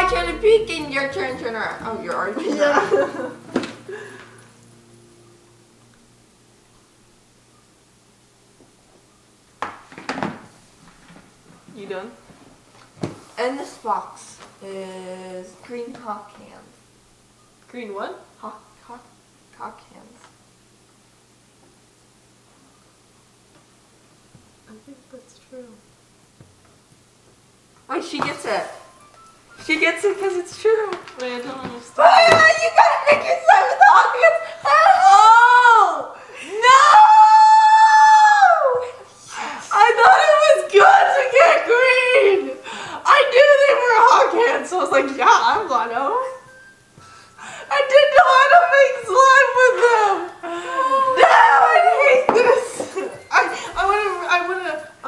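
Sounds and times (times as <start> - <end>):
long high howl: 34.7 - 40.2.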